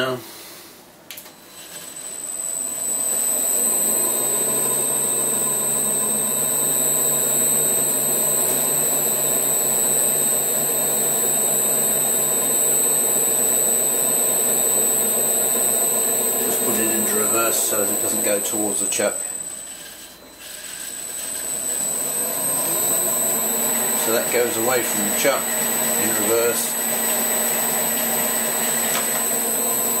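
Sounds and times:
high whine: 0:01.8 - 0:30.0
lathe running: 0:02.2 - 0:30.0.

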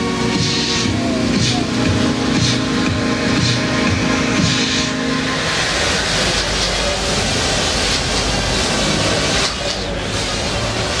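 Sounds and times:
drone propellers hissing: 0:00.0 - 0:09.0.

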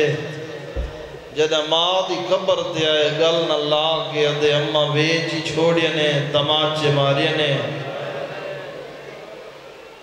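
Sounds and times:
man's voice echoing over loudspeakers: 0:00.0 - 0:08.8.

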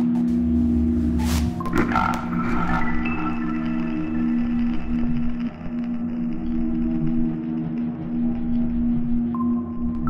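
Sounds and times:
low drone tone: 0:00.0 - 0:10.0.

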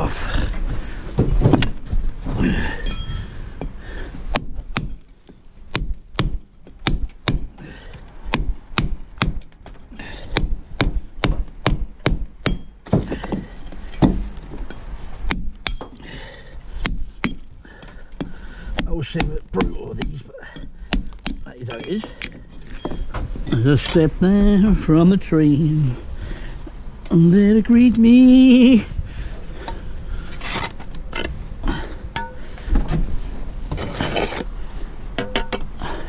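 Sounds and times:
knocking and handling of block: 0:01.2 - 0:02.4, 0:12.4 - 0:16.0
hammer striking steel chisel: 0:10.3 - 0:13.1, 0:15.3 - 0:16.0, 0:16.8 - 0:17.5, 0:18.2 - 0:24.0, 0:32.2 - 0:32.4, 0:35.2 - 0:35.7.

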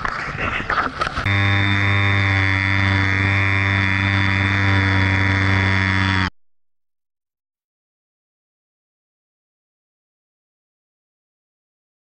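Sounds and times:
electric motor humming: 0:01.3 - 0:06.3.

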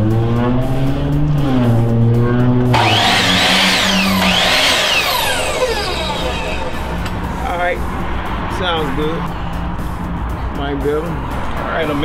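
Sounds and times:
background music: 0:00.0 - 0:12.0
miter saw motor whine: 0:02.7 - 0:07.1.

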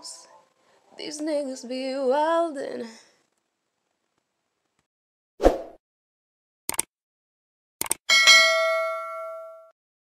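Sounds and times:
bright bell ding: 0:08.1 - 0:09.7.

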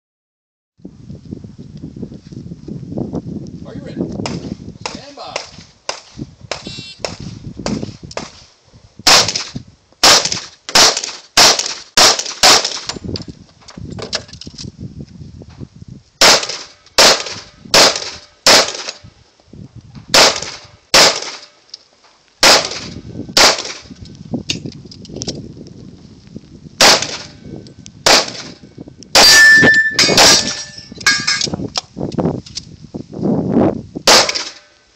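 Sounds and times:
handgun shots: 0:09.1 - 0:13.0
steady ringing tone: 0:29.3 - 0:31.4.

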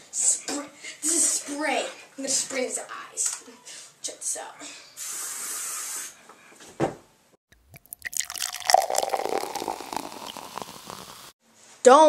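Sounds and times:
water bubbling and dripping: 0:07.5 - 0:11.3.

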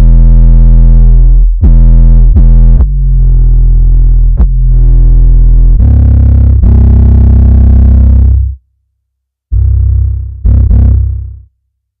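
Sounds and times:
deep distorted bass notes: 0:00.0 - 0:08.6, 0:09.5 - 0:11.6.

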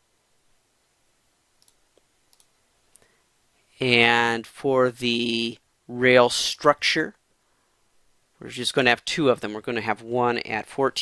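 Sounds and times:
computer mouse clicks: 0:01.6 - 0:03.1.

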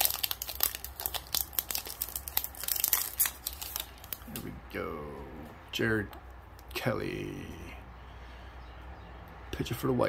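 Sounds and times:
foil wrapper crinkling and tearing: 0:00.0 - 0:04.4.

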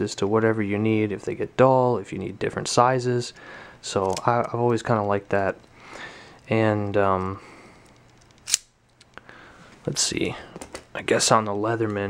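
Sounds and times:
sharp metallic click: 0:08.3 - 0:08.8.

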